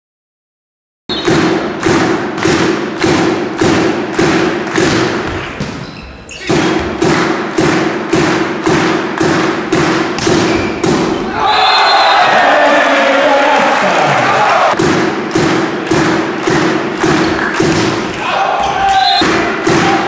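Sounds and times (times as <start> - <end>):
voices shouting: 11.2 - 14.8, 18.1 - 20.0.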